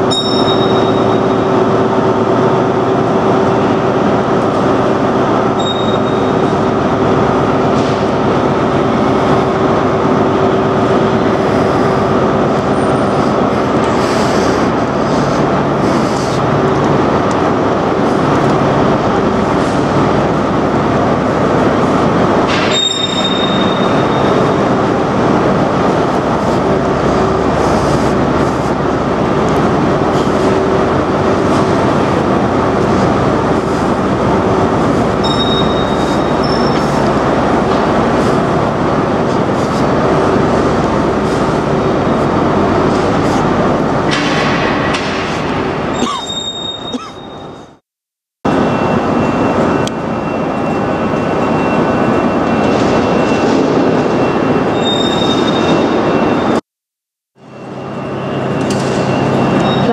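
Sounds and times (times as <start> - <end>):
electric train equipment humming: 0.0 - 47.8, 48.5 - 56.6, 57.4 - 59.9
short high beeps: 0.1 - 1.4, 35.2 - 36.8.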